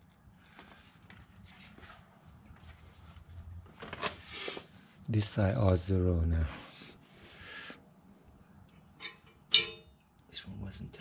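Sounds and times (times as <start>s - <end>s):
garage room tone: 0.0s - 11.0s.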